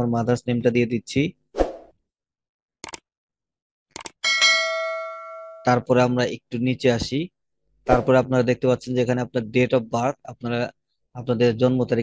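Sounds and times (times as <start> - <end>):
bell ding: 4.2 - 5.8.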